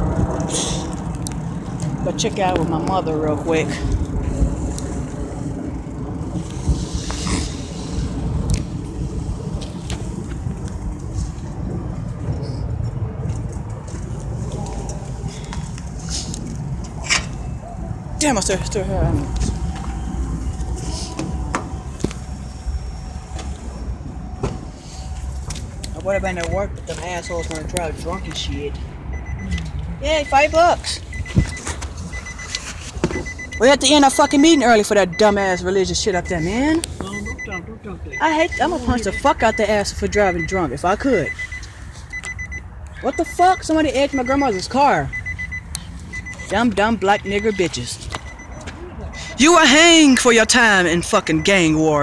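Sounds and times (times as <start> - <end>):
steady low rumble: 0.0 - 52.0
low thump in car: 24.4 - 24.7.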